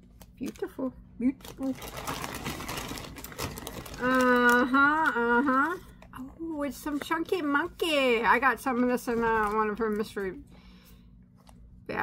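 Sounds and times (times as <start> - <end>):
packaging rustling and crinkling: 1.4 - 4.8, 8.8 - 10.2.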